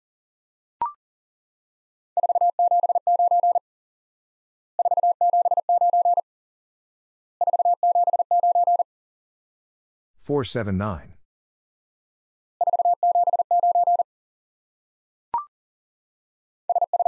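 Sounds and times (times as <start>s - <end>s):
morse code beeps: 2.2s - 3.6s, 4.8s - 6.2s, 7.4s - 8.8s, 12.6s - 14.0s, 16.7s - 17.0s.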